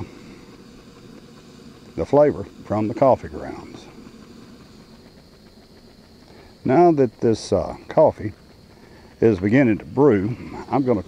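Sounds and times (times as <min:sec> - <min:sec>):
camp stove hissing: 0:00.0 - 0:11.0
coffee starting to boil: 0:00.0 - 0:11.0.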